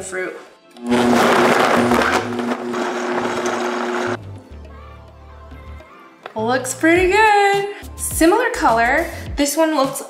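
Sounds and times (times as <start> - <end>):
blender motor churning: 0.8 - 4.2.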